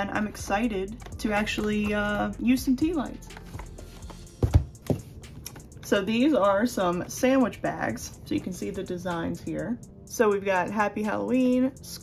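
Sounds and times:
items knocking on tabletop: 4.4 - 5.1.

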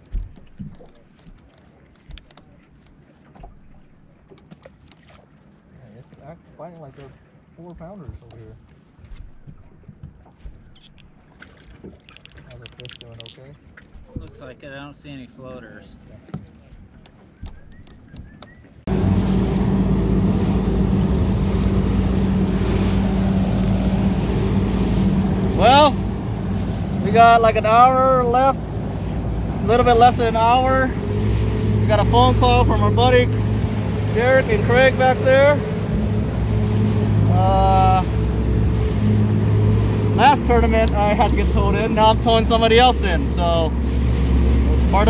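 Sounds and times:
wind and water rushing past hull: 0.0 - 45.0
outboard motor drone: 16.2 - 45.0.

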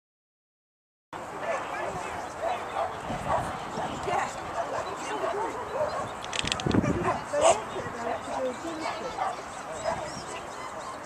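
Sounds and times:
people talking: 1.2 - 6.0, 6.8 - 11.0
dogs barking and yipping: 1.3 - 11.0.

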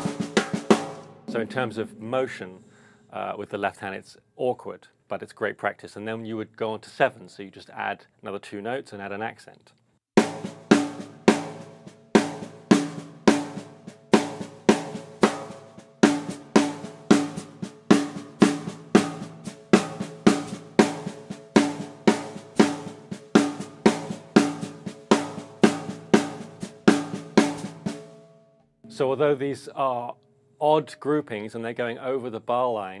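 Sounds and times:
snare drum ghost notes and rim-shots: 0.0 - 2.7, 10.2 - 28.3.

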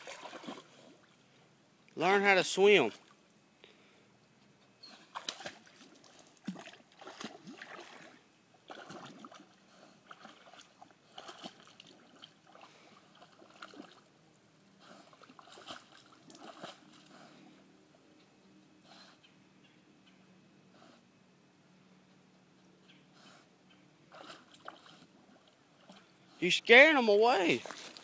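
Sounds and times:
dog splashing in water: 0.0 - 1.0, 5.1 - 14.1, 15.0 - 17.1, 24.2 - 26.1.

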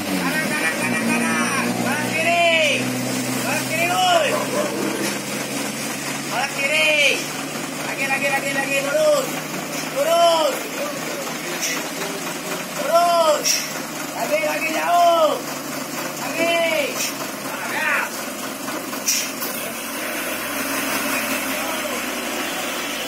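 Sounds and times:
truck diesel engine running: 0.0 - 23.0
people shouting: 10.0 - 11.8, 12.8 - 13.6.

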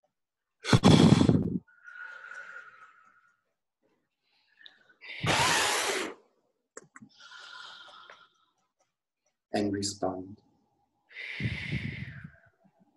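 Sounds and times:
breath blown into microphone: 0.6 - 2.1, 11.2 - 12.5.

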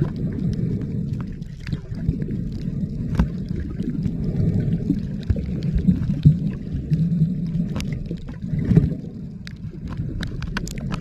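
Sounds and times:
underwater rumble of moving water: 0.0 - 11.0.

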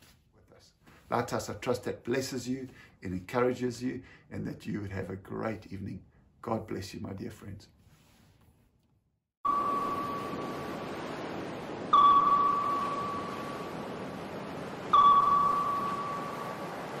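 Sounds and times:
ringing ping tones: 9.4 - 10.9, 11.8 - 14.2, 14.8 - 17.0.

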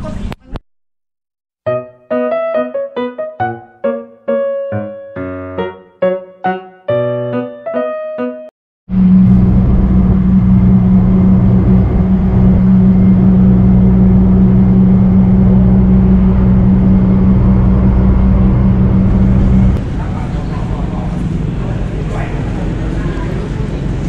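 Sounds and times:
bus engine drone: 8.9 - 24.0
road noise: 8.9 - 24.0.

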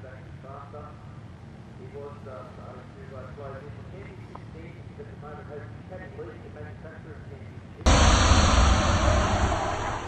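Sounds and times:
rushing noise with deep rumble: 7.9 - 10.0.

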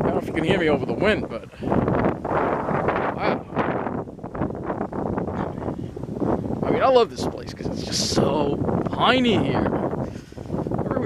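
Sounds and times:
wind blowing across microphone: 0.0 - 11.0.

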